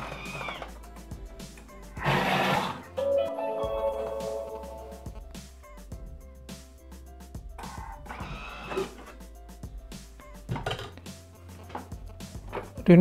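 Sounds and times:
mallet percussion music: 3.0 - 5.3.

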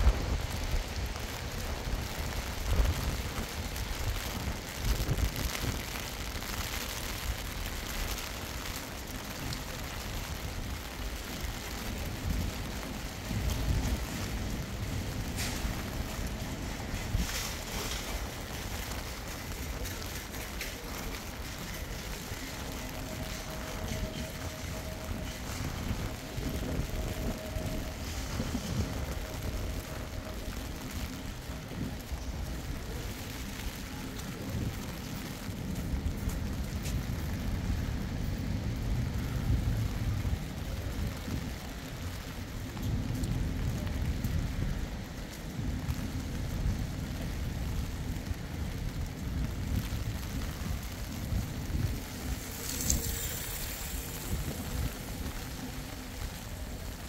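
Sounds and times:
rain hiss on wet paving: 0.0 - 57.0.

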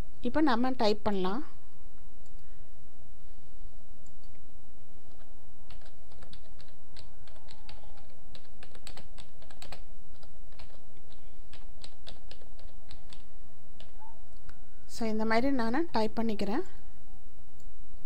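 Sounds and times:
low background hum: 0.0 - 18.0
computer keyboard typing: 5.1 - 14.6.

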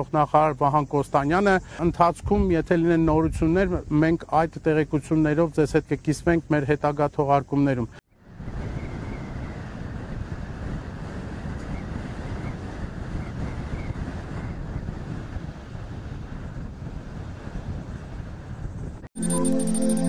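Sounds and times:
wind buffeting microphone: 2.0 - 3.9, 8.2 - 19.1.

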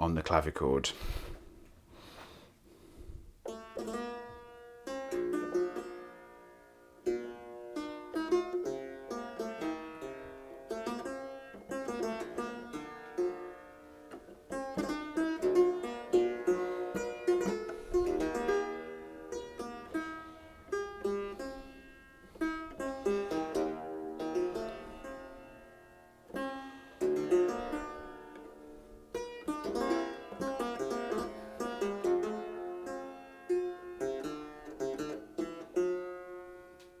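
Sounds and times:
clavichord playing slow piece: 3.4 - 37.0.

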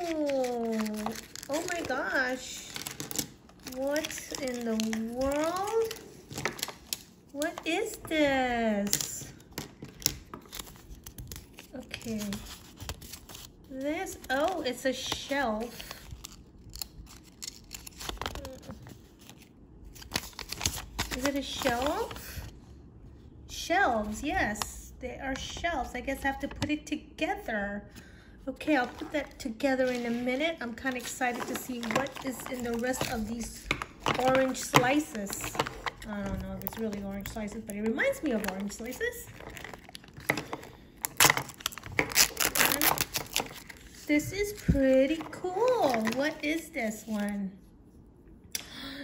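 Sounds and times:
paper crinkling: 0.0 - 7.7, 8.8 - 22.5, 28.6 - 47.3.

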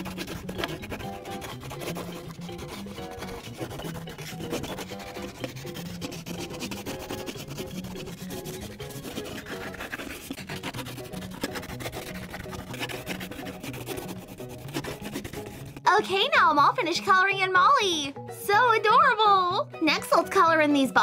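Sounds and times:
crayon scratching on paper: 0.0 - 15.9
soft background music: 0.0 - 21.0.

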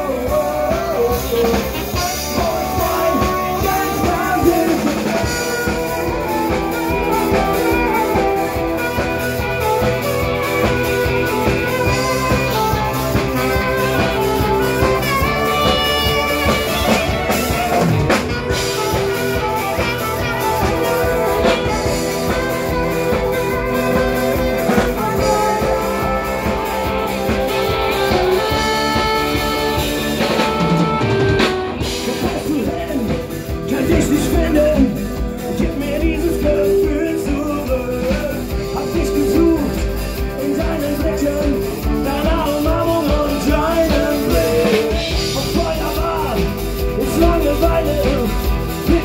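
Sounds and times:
accordion: 0.0 - 49.0
bass guitar: 0.0 - 49.0
drum kit: 0.0 - 49.0
person singing: 0.0 - 49.0
saxophone lead: 0.0 - 49.0.

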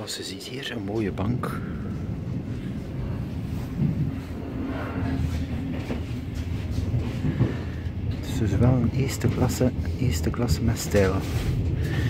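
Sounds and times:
train rumbling inside carriage: 0.0 - 12.0.

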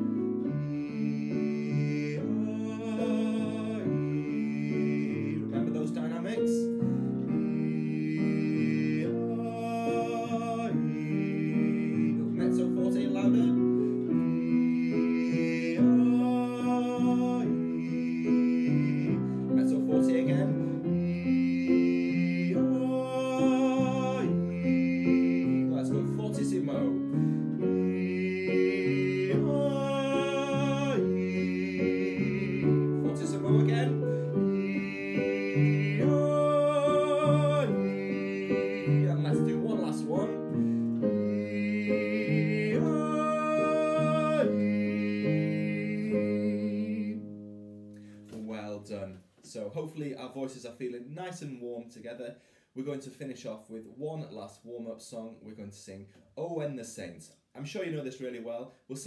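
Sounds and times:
piano chords: 0.0 - 48.9
man singing vocal warm-ups: 0.0 - 59.0.

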